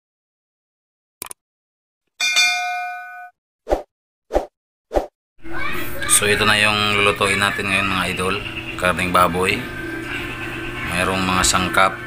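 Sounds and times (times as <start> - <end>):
bright bell-like ding: 2.2 - 3.3.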